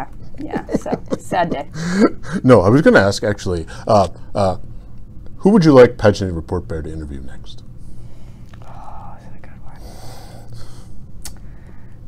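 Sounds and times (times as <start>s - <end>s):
low room hum: 0.0s - 12.0s
person whispering breathily: 8.6s - 10.5s
breath hiss: 9.8s - 12.0s.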